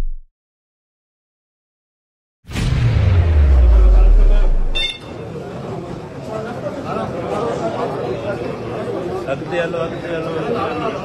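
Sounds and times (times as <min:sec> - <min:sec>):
deep falling bass rumble: 0:02.5 - 0:04.8
murmur of crowd voices: 0:03.9 - 0:11.0
brief high beep: 0:04.7 - 0:05.1.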